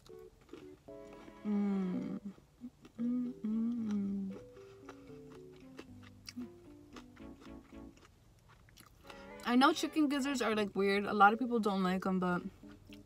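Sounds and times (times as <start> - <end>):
light background music: 0.0 - 2.4, 3.0 - 8.3, 8.9 - 13.0
woman humming: 1.4 - 4.4
wet chewing clicks: 2.2 - 9.1.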